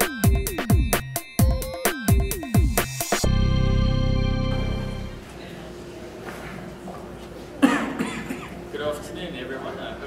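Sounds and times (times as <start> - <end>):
person coughing: 7.6 - 8.6.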